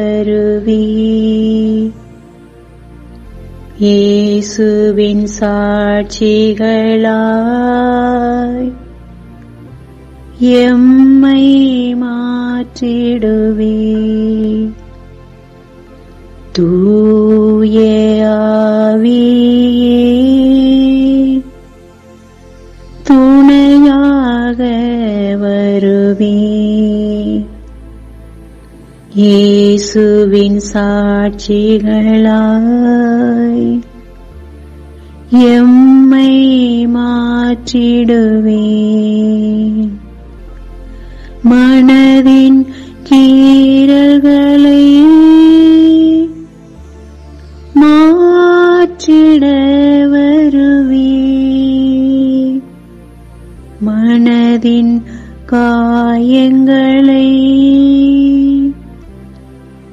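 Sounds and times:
person singing a devotional chant: 0:00.0 - 0:02.0, 0:29.1 - 0:34.0
soft instrumental drone: 0:00.0 - 0:59.9.

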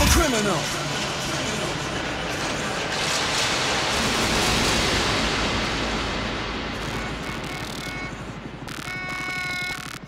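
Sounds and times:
synthesized static noise: 0:06.7 - 0:10.0.

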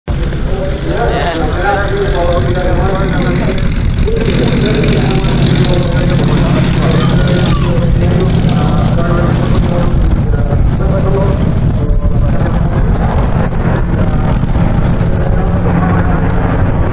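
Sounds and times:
people talking: 0:00.1 - 0:16.9
propeller aircraft engines droning: 0:00.1 - 0:16.9.

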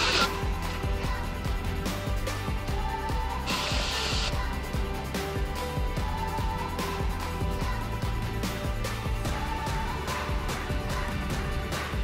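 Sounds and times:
background music with beat: 0:00.0 - 0:12.0
burst of hiss: 0:03.5 - 0:04.4.

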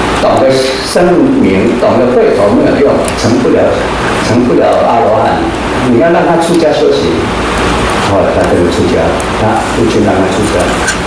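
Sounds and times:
man lecturing through microphone: 0:00.0 - 0:11.0.

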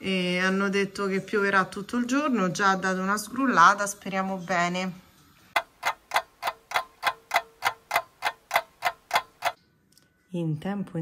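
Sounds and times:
clock ticking: 0:05.6 - 0:09.6.

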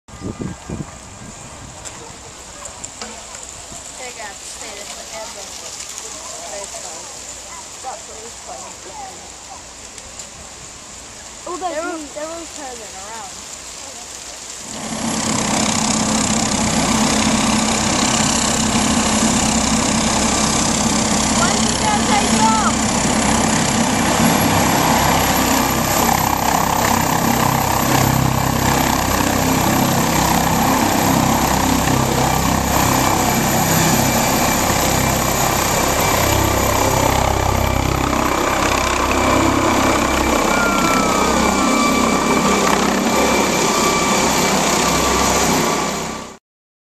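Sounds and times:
helicopter rotor pulsing: 0:14.6 - 0:46.4
helicopter turbine whine: 0:14.6 - 0:46.4.

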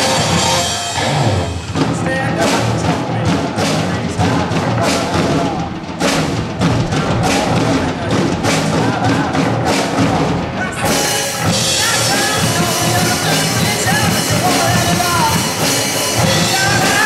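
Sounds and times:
electric guitars: 0:00.0 - 0:03.0
bass guitar: 0:00.0 - 0:17.0
drum kit beat: 0:00.0 - 0:17.0.

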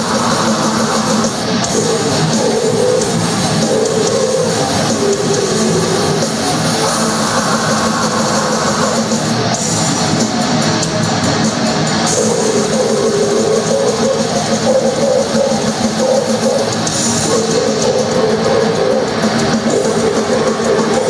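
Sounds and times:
distorted electric guitars: 0:00.0 - 0:21.0
drum kit: 0:00.0 - 0:21.0.

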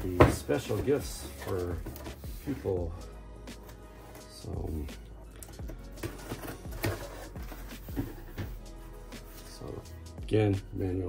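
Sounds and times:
background music: 0:00.0 - 0:11.0
cardboard box knocks and scrapes: 0:06.0 - 0:08.6.

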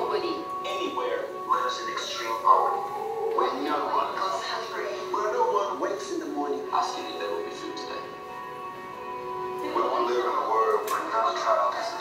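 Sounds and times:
voices speaking: 0:00.0 - 0:08.2
background music over loudspeakers: 0:00.0 - 0:12.0.

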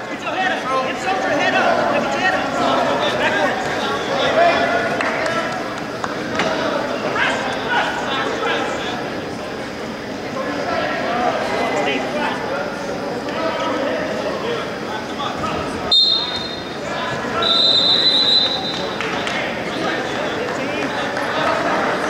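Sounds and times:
indistinct voices in gym hall: 0:00.0 - 0:22.0
referee whistle blasts: 0:15.9 - 0:16.8, 0:17.4 - 0:18.9.

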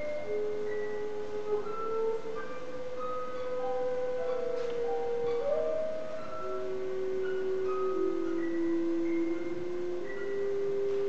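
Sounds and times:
clarinet violin and harp trio: 0:00.0 - 0:11.0.

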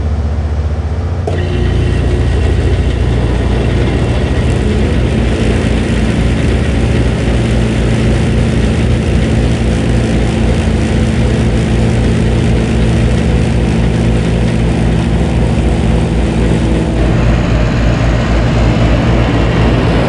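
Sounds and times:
heat pump running hum: 0:00.0 - 0:20.0
rush of air: 0:01.7 - 0:20.0.

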